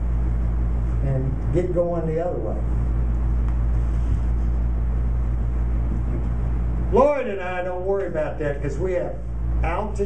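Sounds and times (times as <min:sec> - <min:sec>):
low room hum and rumble: 0:00.0 - 0:10.0.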